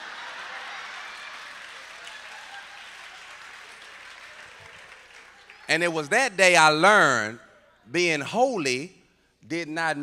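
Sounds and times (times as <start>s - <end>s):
audience applauding: 0.0s - 6.1s.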